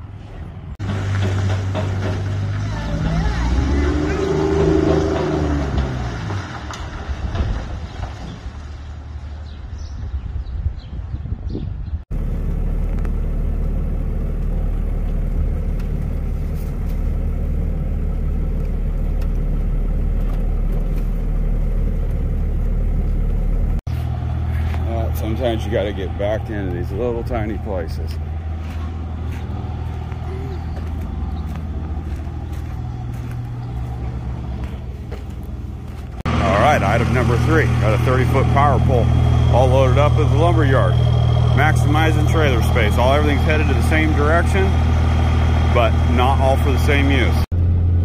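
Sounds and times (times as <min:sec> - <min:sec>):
diesel pickup engine: 0:00.0 - 0:09.9, 0:12.0 - 0:48.0.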